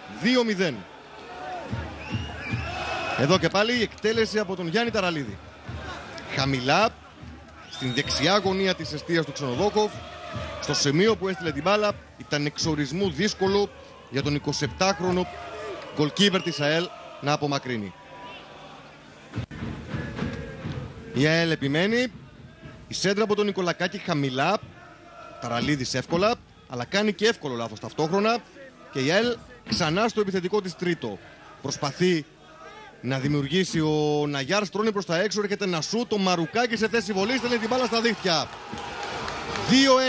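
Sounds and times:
people shouting: 0.0 - 11.8, 12.8 - 19.0, 24.6 - 26.7, 36.4 - 40.0
crowd noise: 0.0 - 40.0
thin whistle-like tones: 2.0 - 2.7.

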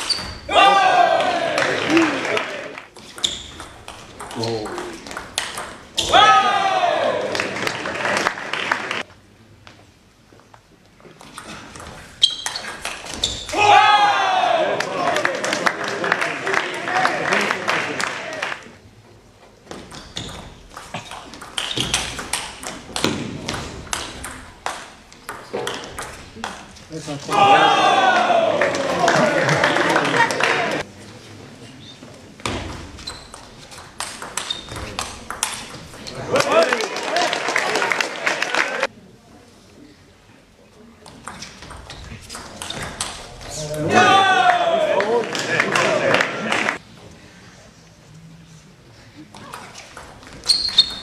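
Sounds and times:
crowd applause: 0.7 - 2.8, 6.3 - 9.0, 14.0 - 18.8, 27.4 - 30.9, 36.3 - 38.9, 43.9 - 46.8
person shouting: 6.0 - 7.2, 27.3 - 29.0, 43.8 - 45.0.

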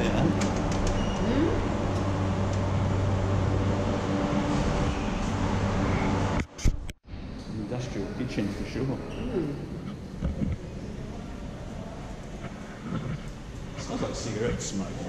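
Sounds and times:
low mechanical hum: 0.0 - 15.0
room noise: 0.0 - 15.0.

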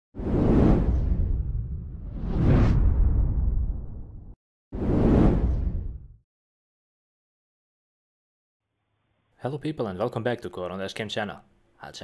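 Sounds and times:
cinematic whoosh: 0.2 - 6.2
deep rumble: 0.4 - 4.4.

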